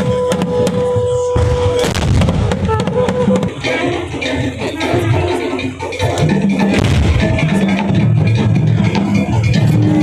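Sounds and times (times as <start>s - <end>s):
heavy ceremonial drumming: 0.0s - 10.0s.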